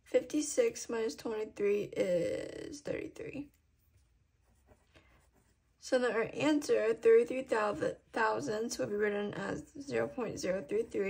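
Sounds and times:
pen scratching on paper: 3.9s - 11.0s.

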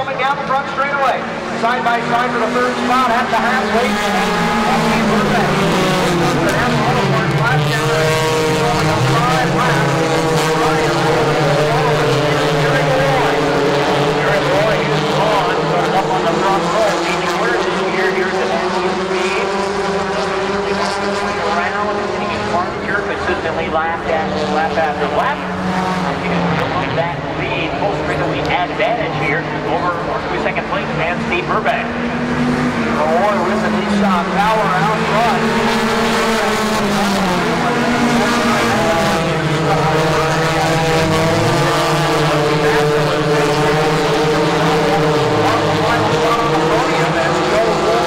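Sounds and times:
stock car engines racing: 0.0s - 48.0s.

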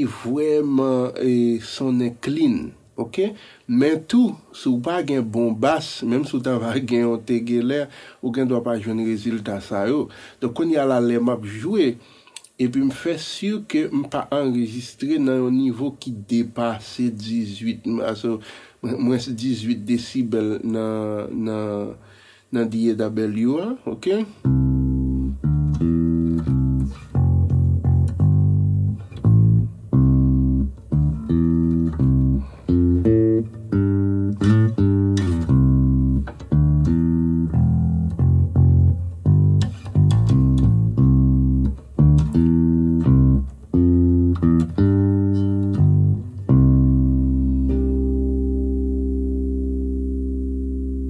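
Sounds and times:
electric bass guitar notes: 24.4s - 51.0s.

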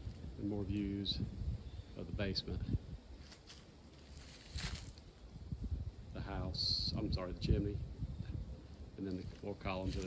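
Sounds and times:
footsteps in dry leaves: 3.1s - 5.3s, 9.1s - 10.0s.

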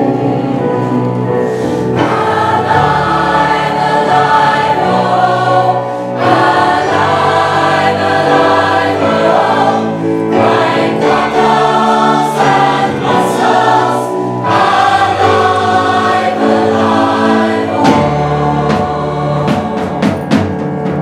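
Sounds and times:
mixed choir singing in harmony: 0.0s - 21.0s.

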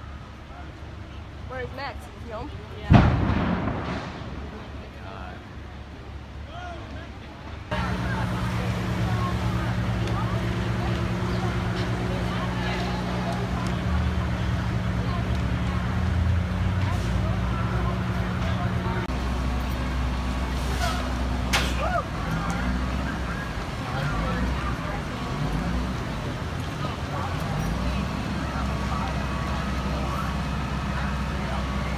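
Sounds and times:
diesel engine rumble: 0.0s - 31.9s
faint distant voices: 0.0s - 31.9s.

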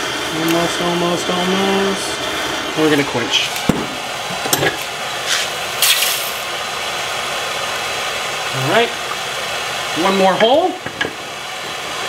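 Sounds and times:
gas torch hissing: 0.0s - 12.0s
hot metal hissing in water: 0.0s - 12.0s.

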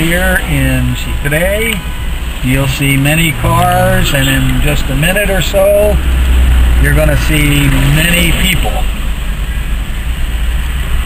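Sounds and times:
car engine: 0.0s - 11.0s
road noise: 0.0s - 11.0s.

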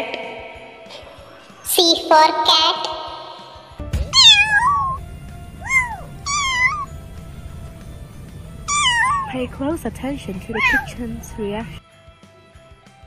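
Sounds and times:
kittens meowing: 4.1s - 7.5s, 8.3s - 9.4s, 10.2s - 11.8s.

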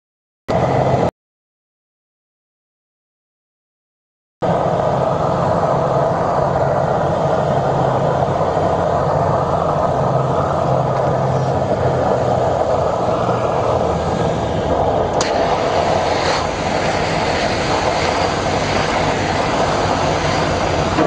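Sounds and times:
aircraft engines and rushing air: 0.5s - 1.1s, 4.4s - 21.0s
low hum: 4.4s - 21.0s.

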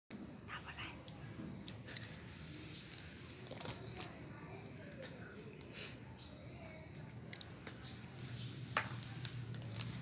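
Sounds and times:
faint low voices: 0.2s - 10.0s.

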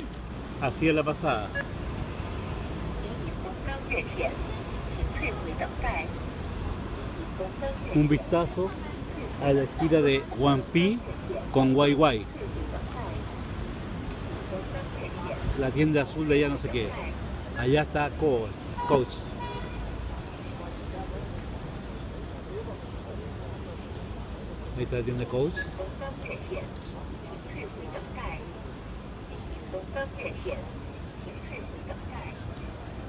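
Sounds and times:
passers-by talking: 0.0s - 33.0s
road traffic rumble: 0.0s - 33.0s.

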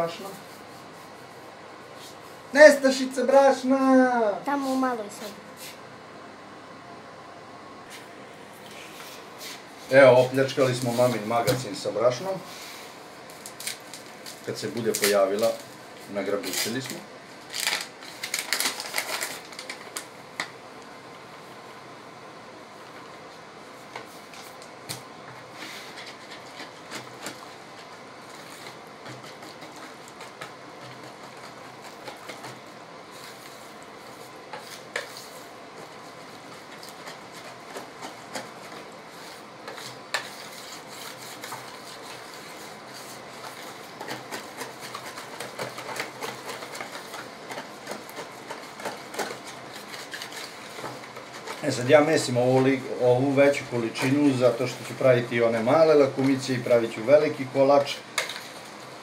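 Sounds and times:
hand kneading dough: 23.8s - 57.9s.

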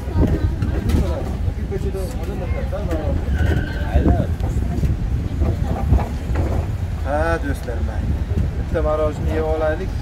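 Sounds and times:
indistinct talk: 0.0s - 10.0s.

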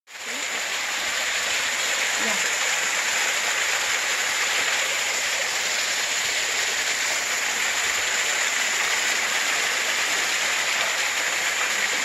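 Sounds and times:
waterfall splashing onto rocks: 0.1s - 12.0s.

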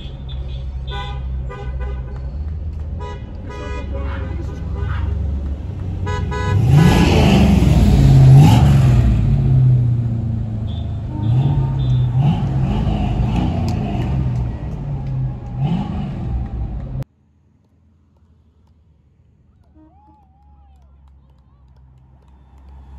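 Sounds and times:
car horn tooting: 0.0s - 2.2s, 3.0s - 5.3s, 6.0s - 7.2s, 10.6s - 12.9s, 19.6s - 20.5s
car engine revving: 4.6s - 17.0s.

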